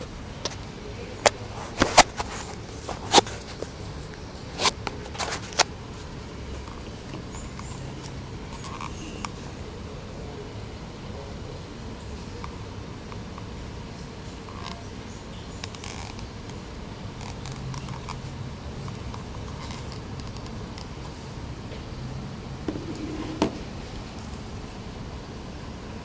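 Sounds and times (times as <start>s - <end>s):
steady low hiss: 0.0s - 26.0s.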